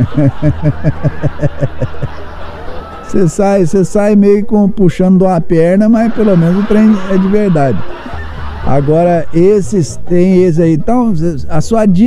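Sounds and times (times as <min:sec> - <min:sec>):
man laughing: 0:00.0 - 0:02.3, 0:05.9 - 0:11.2.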